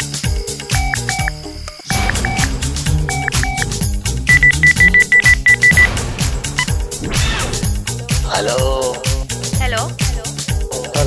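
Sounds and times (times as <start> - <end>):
background music with steady beat: 0.0 - 11.0
rapid high electronic beeping: 0.8 - 6.0.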